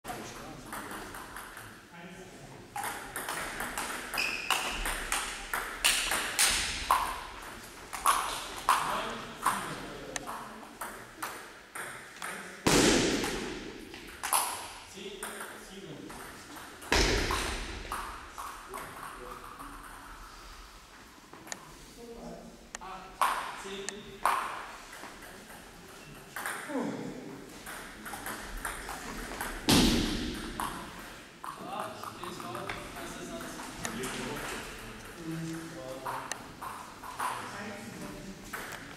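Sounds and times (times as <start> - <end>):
ping pong ball clicking off paddles: 0.6 - 1.8, 2.8 - 12.5, 13.2 - 20.1, 23.2 - 26.7, 27.7 - 35.2.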